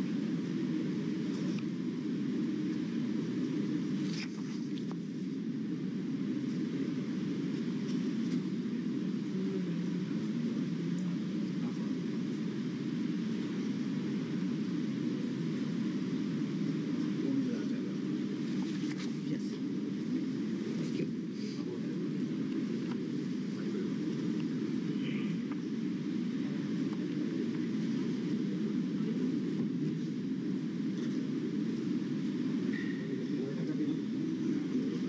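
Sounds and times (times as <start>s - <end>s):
low rumbling background noise: 0.0s - 35.0s.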